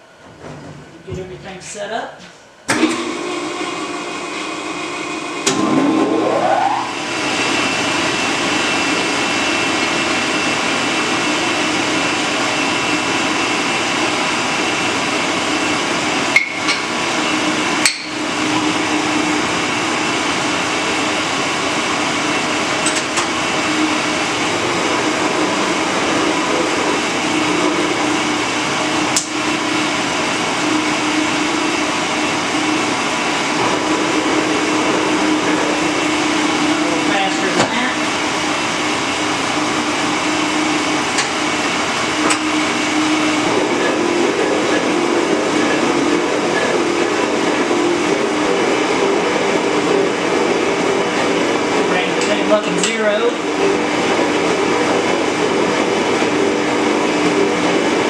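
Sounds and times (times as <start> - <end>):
electric motor spinning up: 2.8 - 14.1.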